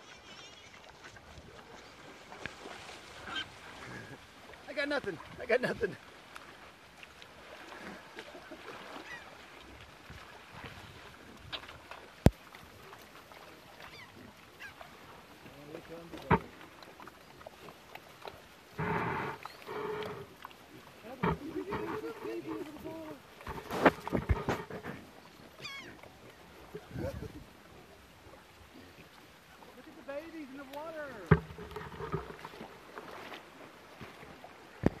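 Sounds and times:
pig grunting: 0:18.8 - 0:20.4
handling knocks on a camera: 0:31.3 - 0:32.5.

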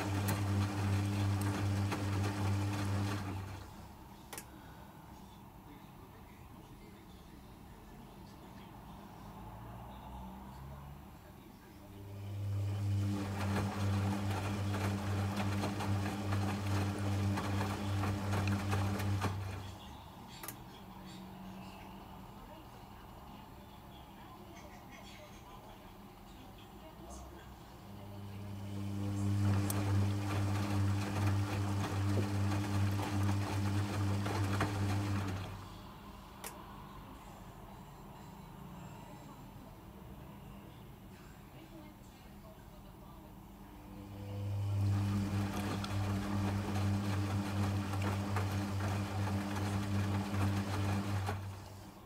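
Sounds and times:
wet laundry tumbling: 0:00.0 - 0:03.7, 0:12.4 - 0:19.8, 0:28.3 - 0:35.6, 0:44.5 - 0:51.9
washing machine drum motor humming: 0:00.0 - 0:03.8, 0:12.1 - 0:19.8, 0:27.9 - 0:35.7, 0:44.0 - 0:52.0
faint click: 0:04.3 - 0:04.5.

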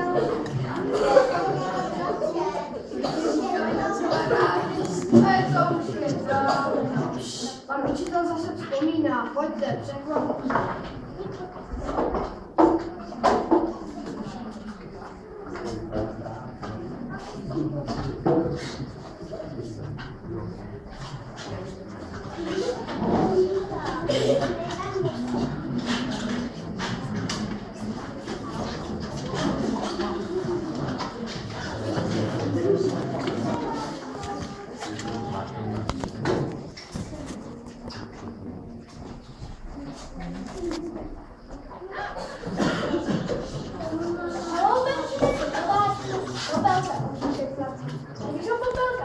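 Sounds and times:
chatter of children and adults: 0:00.0 - 0:49.0
murmur of voices: 0:00.0 - 0:49.0.

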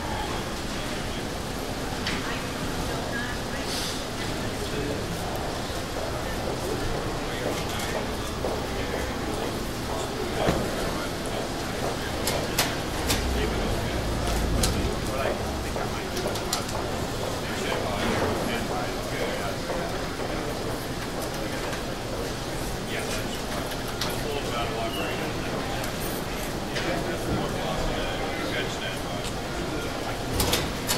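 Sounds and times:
indistinct crowd chatter: 0:00.0 - 0:30.9
low rumble: 0:12.9 - 0:16.1.

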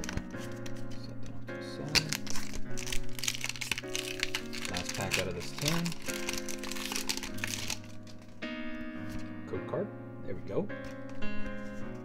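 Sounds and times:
wrapper crinkling: 0:00.0 - 0:09.3, 0:10.8 - 0:12.0
background music with held notes: 0:00.0 - 0:12.0.

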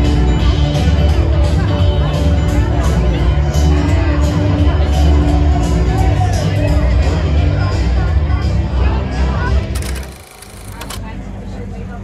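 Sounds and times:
faint voices of people: 0:00.0 - 0:12.0.

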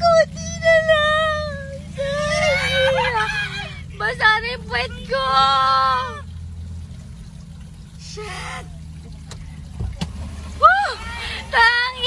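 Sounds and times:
voice rising: 0:00.0 - 0:06.3, 0:10.5 - 0:12.0
car engine drone: 0:00.0 - 0:12.0
water sloshing under wheels: 0:00.0 - 0:12.0.

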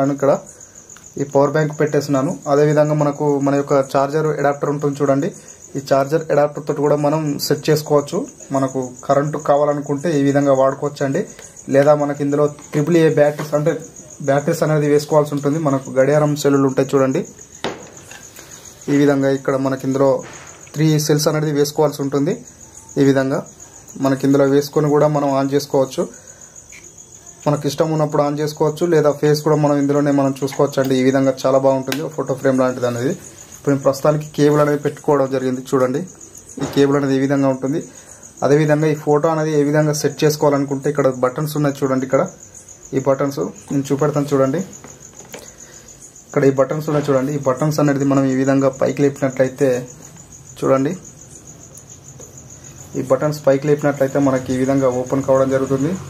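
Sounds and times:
cricket trilling: 0:00.0 - 0:56.0
man speaking: 0:01.2 - 0:17.4, 0:18.8 - 0:26.2, 0:27.4 - 0:44.7, 0:46.3 - 0:50.0, 0:50.6 - 0:51.0, 0:52.9 - 0:56.0.

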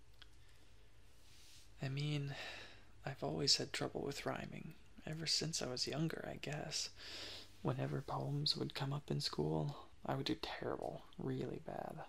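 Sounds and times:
steady low hum: 0:00.0 - 0:12.0
person speaking softly: 0:07.6 - 0:12.0.

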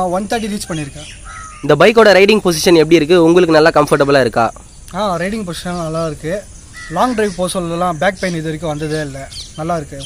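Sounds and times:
insects chirring: 0:00.0 - 0:10.0
man talking: 0:00.0 - 0:10.0.

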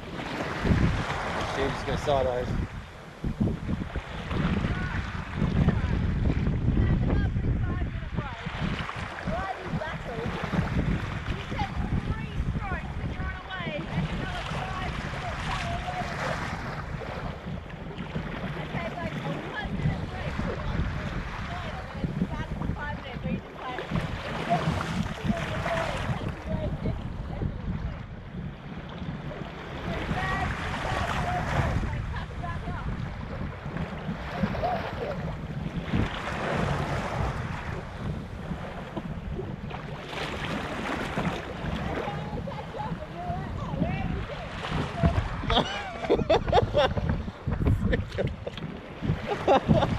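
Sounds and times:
water splashing against kayak: 0:00.0 - 0:49.9
wind buffeting microphone: 0:00.0 - 0:49.9.

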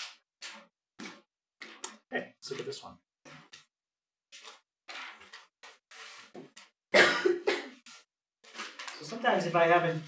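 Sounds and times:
person coughing: 0:06.9 - 0:07.8.

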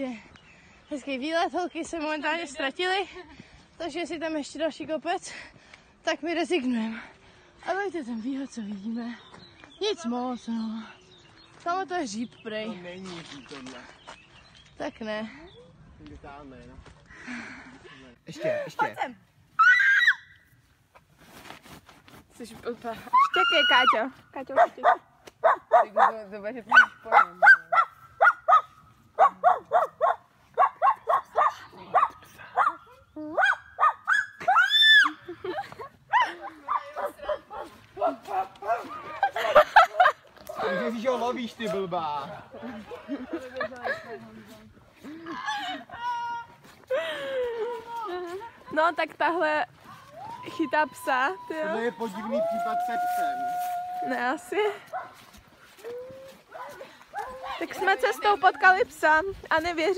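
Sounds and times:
faint rustling and scuffing: 0:20.4 - 0:23.4, 0:52.6 - 0:59.9
voices calling a dog: 0:23.1 - 0:35.2, 0:36.0 - 0:44.2, 0:47.6 - 0:59.2.

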